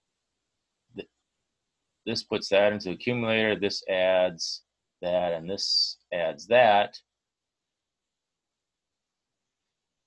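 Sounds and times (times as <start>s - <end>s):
man's clipped syllable: 2.1s - 7.0s.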